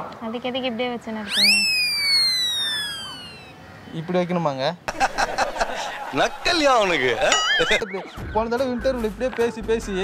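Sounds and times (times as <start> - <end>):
slide whistle tone: 1.3 - 3.6.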